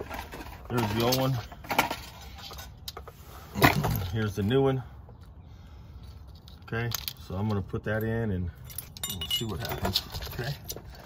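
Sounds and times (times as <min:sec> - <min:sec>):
sensor and wiring clattering on concrete: 0:00.0 - 0:04.6, 0:06.0 - 0:11.0.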